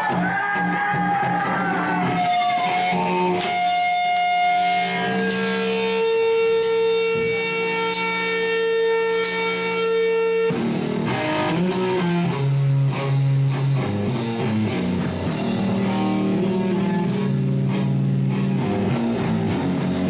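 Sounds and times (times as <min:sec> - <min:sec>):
loud electric guitar notes: 0:00.0 - 0:20.0.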